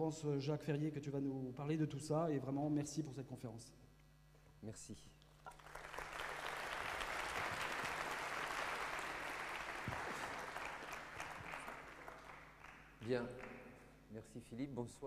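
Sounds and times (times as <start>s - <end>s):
audience applauding: 5.5s - 13.8s.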